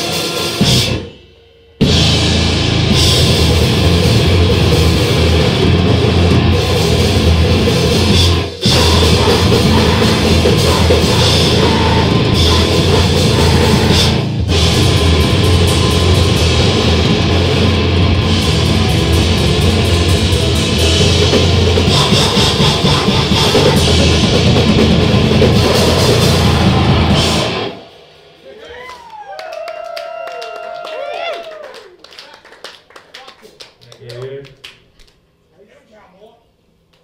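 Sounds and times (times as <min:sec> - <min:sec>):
grindcore band playing live: 0:00.0 - 0:29.1.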